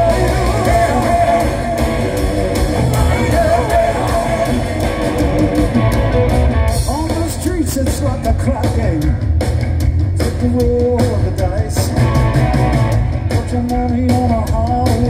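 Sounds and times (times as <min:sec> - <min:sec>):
lead electric guitar: 0:00.0 - 0:07.2, 0:11.8 - 0:13.5
live rock band playing: 0:00.0 - 0:15.0.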